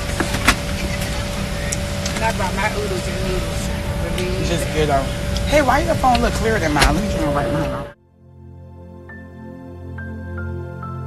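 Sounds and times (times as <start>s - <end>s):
airliner engine and airflow rumble: 0.0s - 8.0s
faint steady hum: 0.0s - 8.0s.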